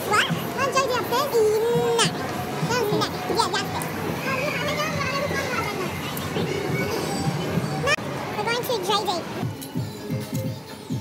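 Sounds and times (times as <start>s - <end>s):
people chattering and calling: 0.0s - 11.0s.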